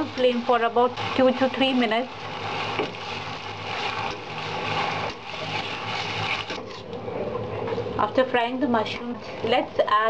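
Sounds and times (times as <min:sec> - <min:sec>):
food sizzling in oil: 0:00.0 - 0:06.9.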